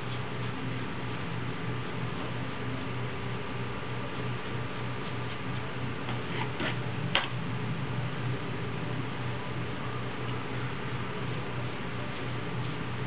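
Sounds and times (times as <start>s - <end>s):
steady low hum and hiss: 0.0s - 13.0s.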